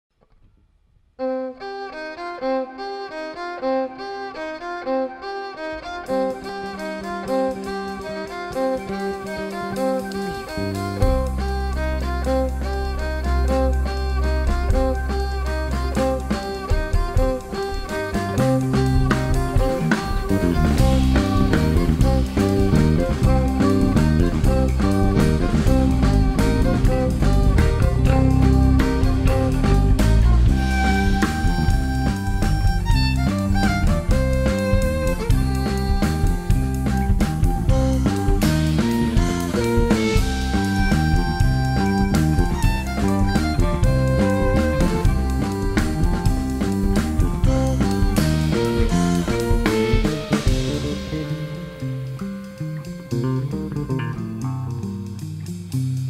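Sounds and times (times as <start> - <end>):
violin: 1.2 - 55.3
electric guitar: 1.2 - 56.0
bass guitar line: 4.6 - 56.0
drums: 6.0 - 56.0.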